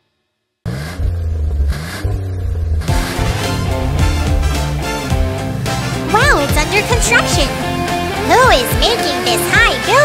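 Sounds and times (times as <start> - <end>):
vehicle engine revving: 0.6 - 9.3.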